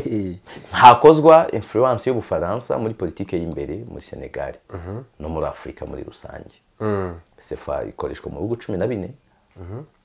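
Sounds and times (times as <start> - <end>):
man speaking in low voice: 0.0 - 10.0.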